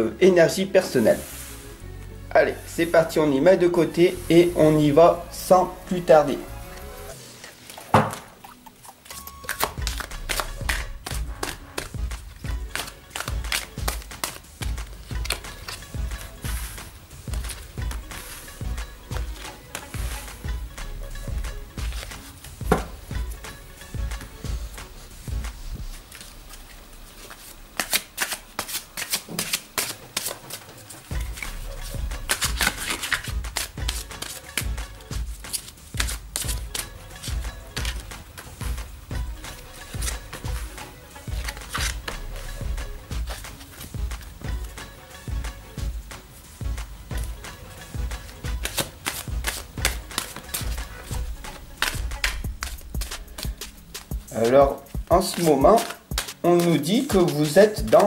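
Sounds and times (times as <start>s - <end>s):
background music with low beat: 0.0s - 27.8s, 30.0s - 58.0s
cards being shuffled and dealt: 6.8s - 58.0s.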